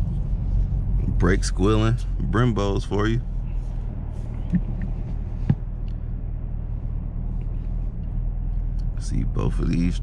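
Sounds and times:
car engine drone: 0.0s - 10.0s
road noise: 0.0s - 10.0s.

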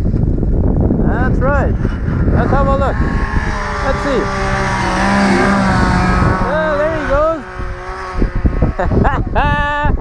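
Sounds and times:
wind buffeting microphone: 0.0s - 10.0s
snowmobile engine: 0.2s - 9.8s
person laughing: 8.6s - 10.0s.

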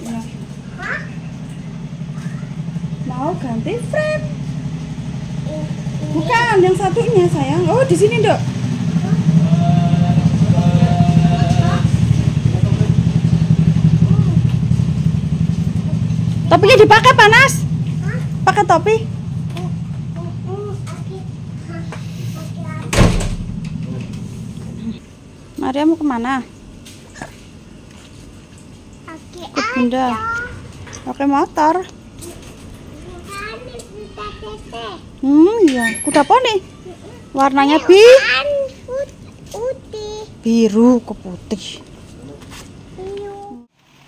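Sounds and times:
outdoor street ambience: 0.0s - 44.0s
motorcycle engine idling: 0.1s - 25.0s
children chattering: 0.6s - 2.8s, 5.3s - 7.8s, 8.9s - 9.5s, 32.1s - 35.6s, 36.3s - 40.4s.

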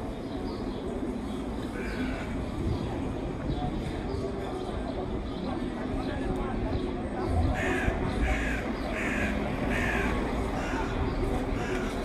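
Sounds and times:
street background: 0.0s - 12.0s.

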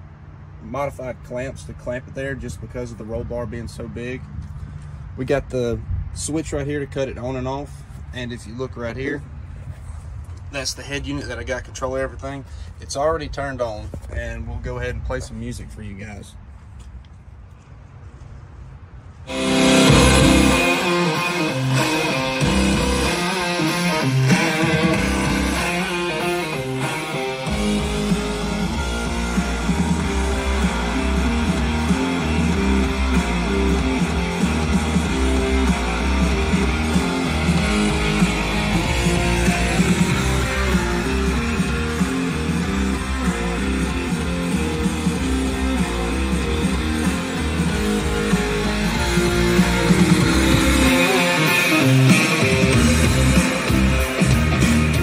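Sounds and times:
guitar-led music over speakers: 19.3s - 55.0s
heavy bass line: 19.3s - 55.0s.

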